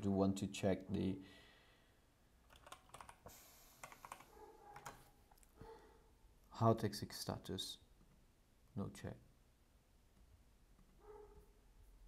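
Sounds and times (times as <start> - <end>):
computer keyboard typing: 2.4 - 5.0.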